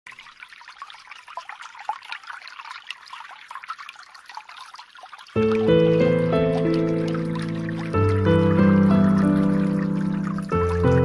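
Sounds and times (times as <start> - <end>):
trickling water drips: 0.1 - 11.0
music: 5.4 - 11.0.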